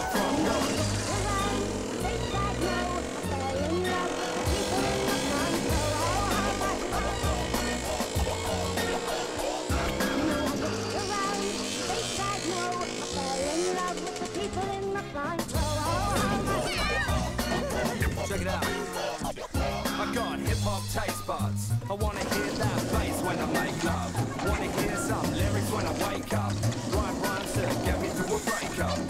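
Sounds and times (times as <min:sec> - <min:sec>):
hip hop backing track: 0:00.0 - 0:29.0
rap vocals: 0:00.0 - 0:29.0.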